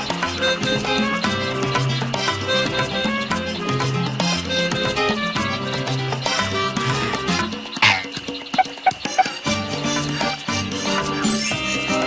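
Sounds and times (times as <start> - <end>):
lively background music: 0.0 - 12.0.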